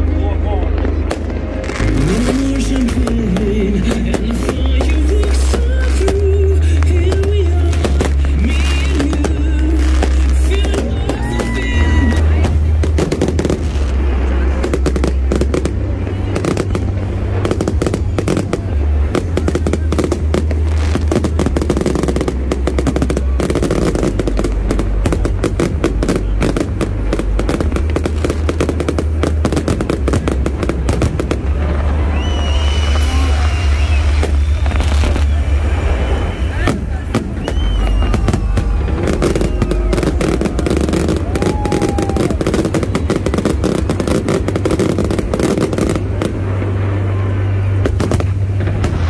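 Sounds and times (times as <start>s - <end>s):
fireworks bangs and crackles: 0.0s - 49.0s.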